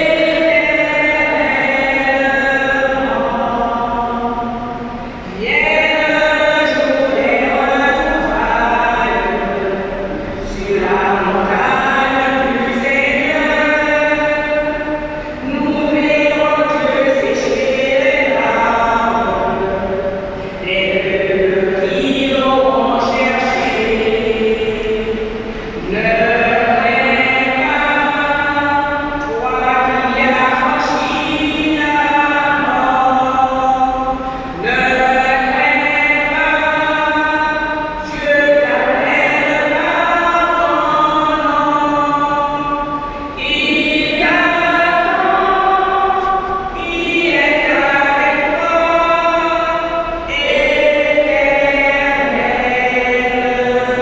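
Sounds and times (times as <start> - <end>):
voices singing a slow hymn: 0.0 - 54.0.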